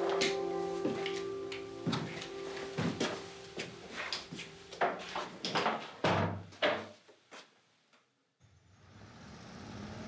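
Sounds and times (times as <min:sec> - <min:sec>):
footsteps on wooden floor: 0:00.0 - 0:07.5.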